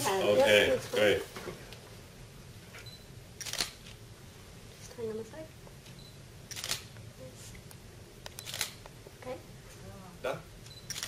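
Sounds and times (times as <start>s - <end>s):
camera shutter clicks: 3.4s - 3.8s, 6.5s - 6.9s, 8.3s - 8.8s.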